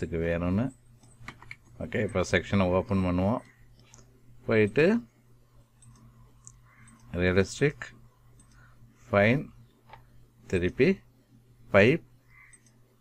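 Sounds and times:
man speaking: 0:00.0 - 0:00.8, 0:01.8 - 0:03.5, 0:04.4 - 0:05.1, 0:07.1 - 0:08.0, 0:09.1 - 0:09.6, 0:10.5 - 0:11.1, 0:11.7 - 0:12.1
computer mouse clicks: 0:03.4 - 0:04.1, 0:05.7 - 0:07.1, 0:08.3 - 0:08.7, 0:12.4 - 0:12.8.

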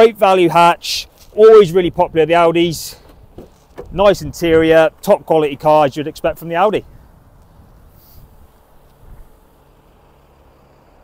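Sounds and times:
soft bumps: 0:02.9 - 0:04.7
faint hiss: 0:07.4 - 0:11.0.

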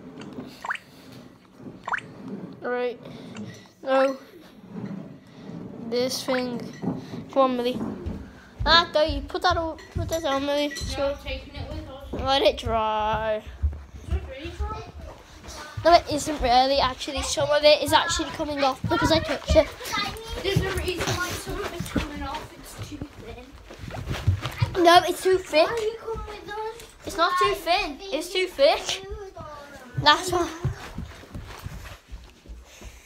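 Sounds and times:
children talking: 0:02.6 - 0:31.8.

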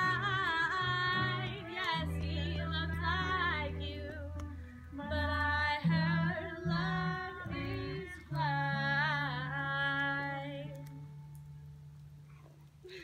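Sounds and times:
voices singing along: 0:00.0 - 0:09.7
guitar accompaniment: 0:00.0 - 0:12.8.

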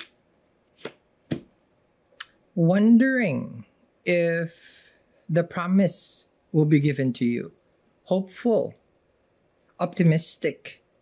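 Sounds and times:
deck tapping on table: 0:00.8 - 0:01.5.

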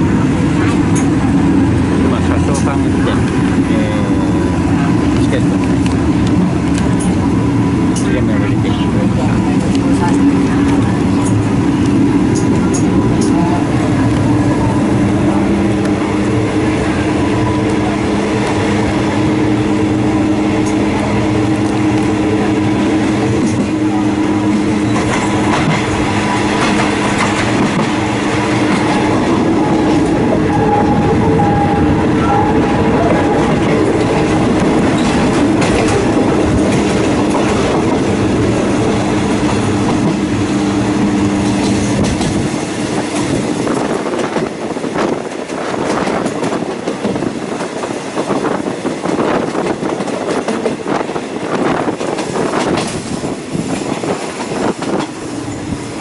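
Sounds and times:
clickety-clack of wheels on track: 0:00.0 - 0:56.0
train low hum: 0:00.0 - 0:56.0
train wheels rushing on rail: 0:00.0 - 0:56.0.

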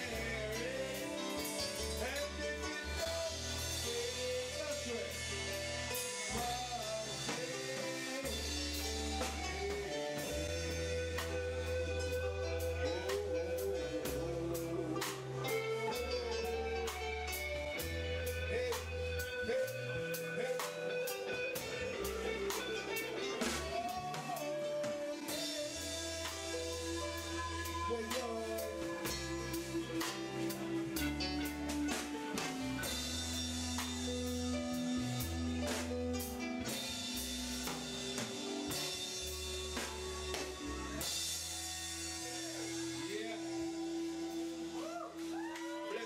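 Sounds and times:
electric bass: 0:00.0 - 0:45.4
drum kit with cymbals: 0:00.0 - 0:46.0
electric guitar: 0:00.0 - 0:46.0.

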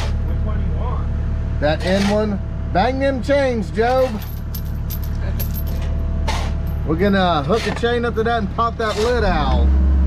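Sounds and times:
excavator engine idling: 0:00.0 - 0:10.0
metal chain clinking: 0:03.9 - 0:07.4.

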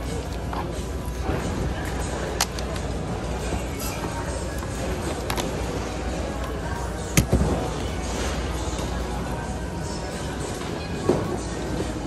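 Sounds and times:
busy room rumble: 0:00.0 - 0:12.0.

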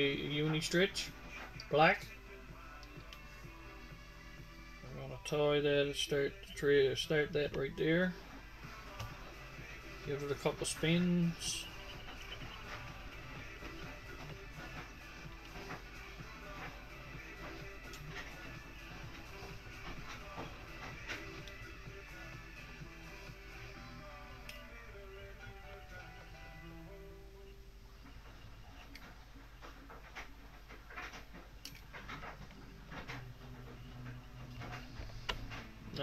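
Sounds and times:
faint background music: 0:00.0 - 0:36.0.

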